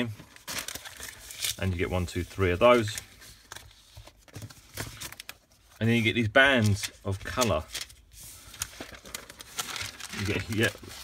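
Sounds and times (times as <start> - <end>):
paper sheets rustling: 0.0 - 11.0.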